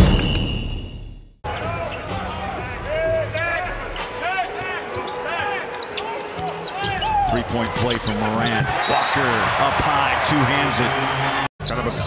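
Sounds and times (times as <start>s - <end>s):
drum-led music: 1.5s - 4.8s
sneakers squeaking: 4.6s - 9.2s.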